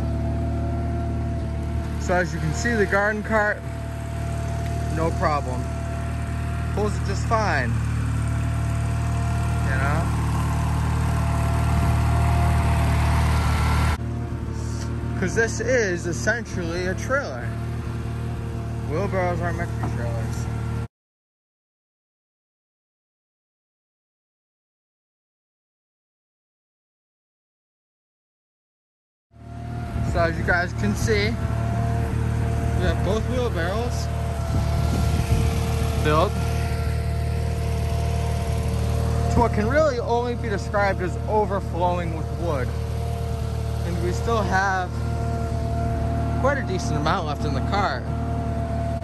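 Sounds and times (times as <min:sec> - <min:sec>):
tractor engine running: 0:00.0 - 0:20.9, 0:29.4 - 0:49.0.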